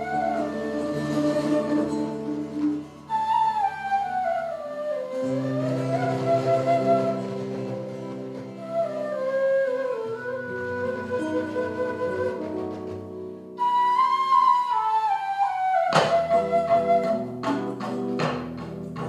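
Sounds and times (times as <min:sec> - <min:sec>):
flute playing slow melody: 0:00.0 - 0:17.7
nylon-string guitar: 0:00.0 - 0:19.0.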